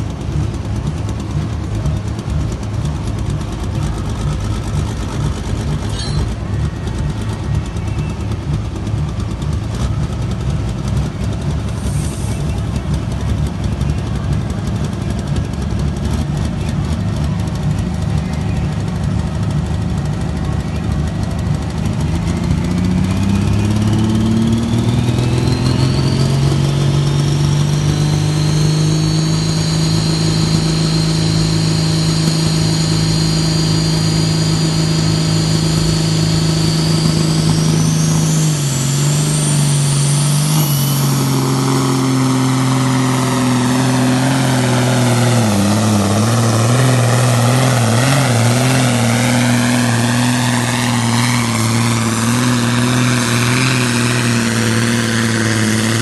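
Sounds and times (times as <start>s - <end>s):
diesel tractor engine at full power: 0.0s - 56.0s
high whine: 0.0s - 56.0s.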